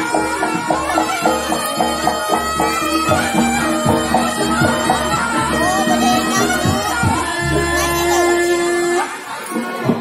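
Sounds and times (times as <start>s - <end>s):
drums beating: 0.0s - 10.0s
reedy shawm melody: 0.0s - 10.0s.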